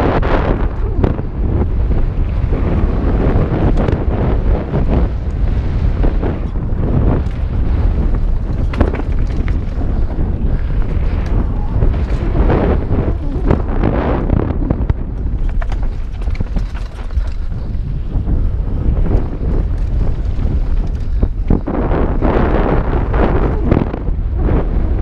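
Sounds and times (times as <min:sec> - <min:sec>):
mountain bike rattling on dirt trail: 0:00.0 - 0:25.0
wind buffeting microphone: 0:00.0 - 0:25.0.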